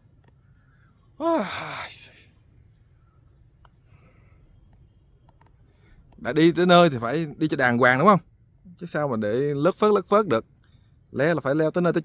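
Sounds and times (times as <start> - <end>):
man sighing: 1.2 - 2.2.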